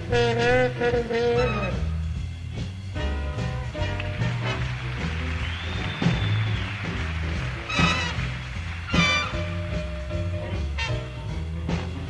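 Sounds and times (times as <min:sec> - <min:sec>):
loud horn-section accents: 0:00.0 - 0:02.1, 0:03.7 - 0:11.4
jazz big band playing: 0:00.0 - 0:12.0
steady bass line: 0:00.0 - 0:12.0.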